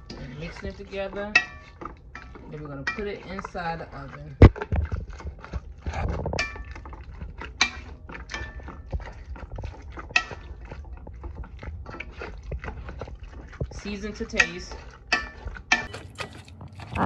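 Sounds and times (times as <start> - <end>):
utensil scraping a bowl: 0.0 - 17.0.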